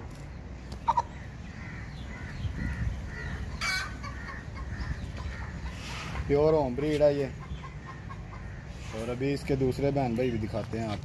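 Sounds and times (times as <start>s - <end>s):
steady low rumble: 0.0s - 6.3s
chickens clucking: 0.6s - 10.4s
chicken squawk: 0.8s - 9.2s.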